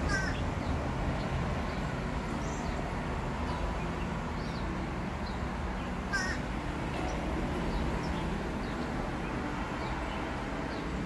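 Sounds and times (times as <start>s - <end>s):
bird call: 0.0s - 0.4s, 6.1s - 6.5s
birds chirping: 0.0s - 11.0s.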